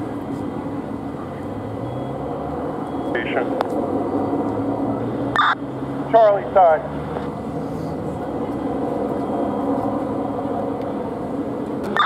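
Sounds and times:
fire engines droning: 0.0s - 12.0s.

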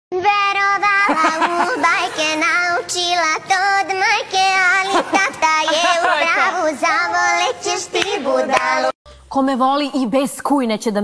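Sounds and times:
woman singing with vibrato: 0.2s - 9.0s.

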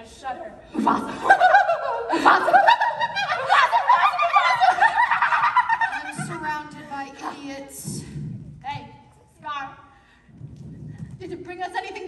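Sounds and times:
people laughing like hyenas: 0.9s - 6.4s.

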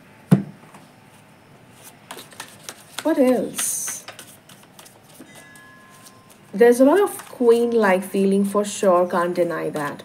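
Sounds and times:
cards shuffled by hand: 1.8s - 6.4s.

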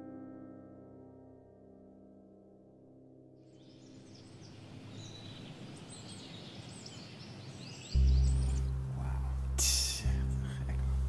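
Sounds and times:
birds chirping: 3.5s - 11.0s
steady outdoor hiss: 3.5s - 11.0s
loud low background music: 8.0s - 11.0s.

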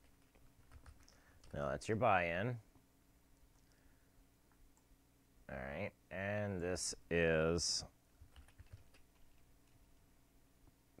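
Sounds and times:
typing on computer keyboard: 0.0s - 1.6s, 8.2s - 9.8s.

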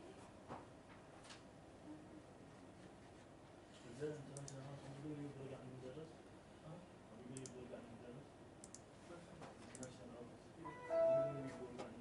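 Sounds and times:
light sharp clicks: 4.2s - 4.6s, 7.4s - 7.6s, 8.6s - 8.9s, 9.7s - 10.0s.

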